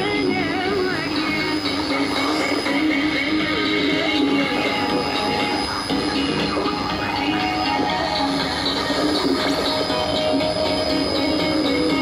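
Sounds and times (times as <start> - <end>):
radio static hiss: 0.0 - 12.0
song through radio speaker: 0.0 - 12.0.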